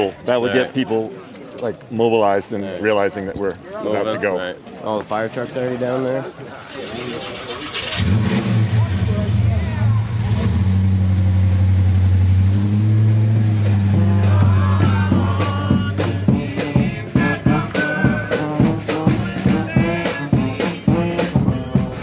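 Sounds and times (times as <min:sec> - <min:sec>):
truck engine revving: 0:06.7 - 0:16.6
band's rattling percussion: 0:12.3 - 0:22.0.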